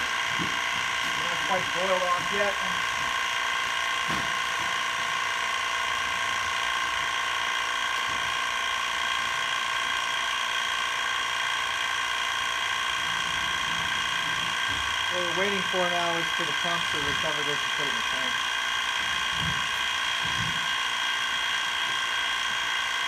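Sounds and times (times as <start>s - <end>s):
pump mechanical whine: 0.0s - 23.0s.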